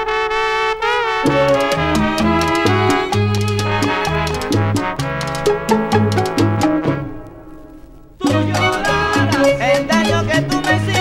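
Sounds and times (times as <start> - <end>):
salsa band playing: 0.8 - 11.0.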